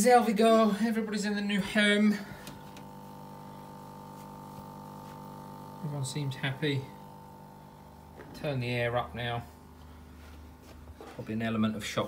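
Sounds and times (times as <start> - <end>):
aquarium pump humming: 0.4 - 11.0.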